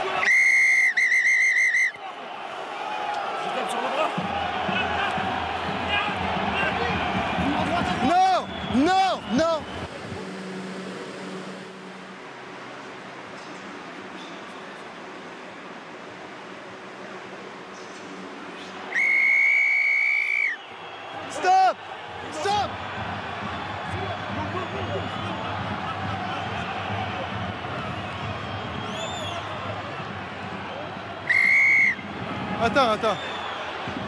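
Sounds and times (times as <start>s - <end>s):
stadium crowd noise: 0.0s - 34.0s
referee's whistle blast: 0.2s - 2.0s, 18.9s - 20.6s, 31.3s - 32.1s.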